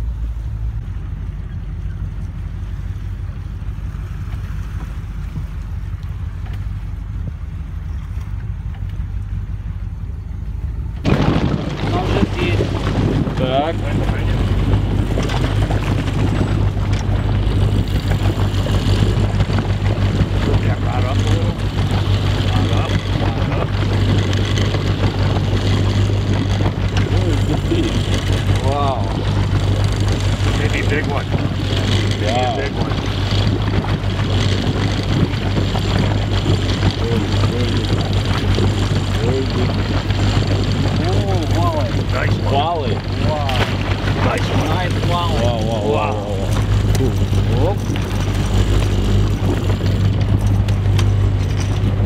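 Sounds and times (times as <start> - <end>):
boat motor humming: 0.0 - 52.0
faint voices: 36.8 - 39.9.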